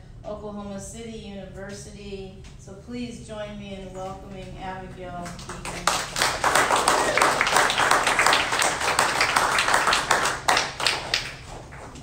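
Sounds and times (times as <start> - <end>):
small audience clapping: 5.2 - 12.0.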